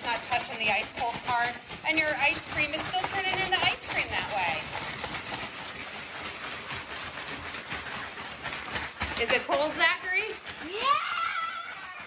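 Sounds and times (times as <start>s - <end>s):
ice crunching in plastic bag: 0.0s - 12.0s.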